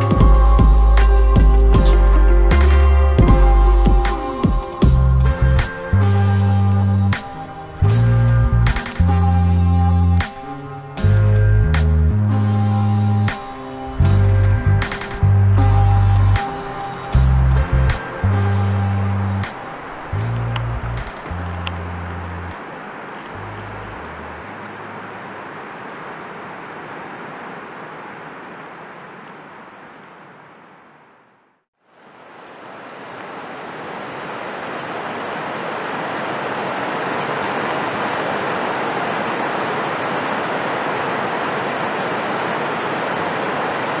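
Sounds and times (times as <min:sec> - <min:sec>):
bass notes of a beat: 0:00.0 - 0:05.7, 0:11.0 - 0:13.4, 0:14.0 - 0:16.4, 0:17.1 - 0:19.5
water rushing over rocks: 0:00.0 - 0:30.6, 0:31.8 - 0:44.0.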